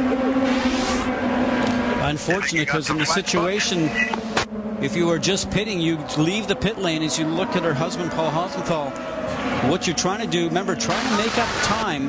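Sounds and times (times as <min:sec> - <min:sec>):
car passing by: 0:00.0 - 0:05.5
race car engine running: 0:00.0 - 0:12.0.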